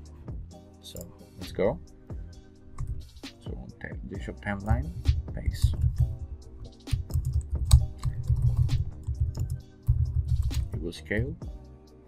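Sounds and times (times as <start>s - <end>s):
background music with low beat: 0.0s - 12.0s
keyboard typing clicks: 7.0s - 10.6s.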